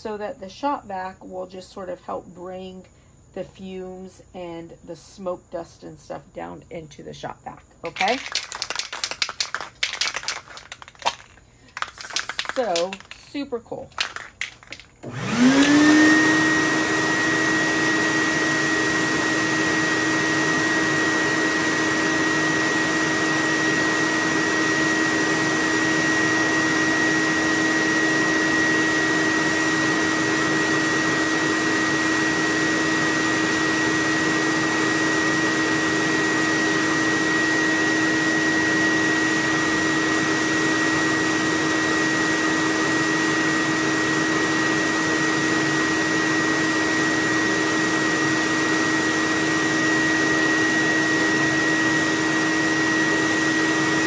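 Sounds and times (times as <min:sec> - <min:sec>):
shop vac motor whine: 0:07.8 - 0:54.0.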